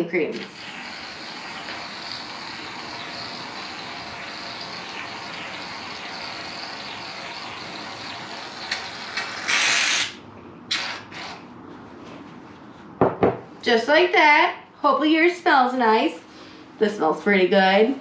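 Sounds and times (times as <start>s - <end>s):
aerosol can spraying: 8.4s - 10.2s.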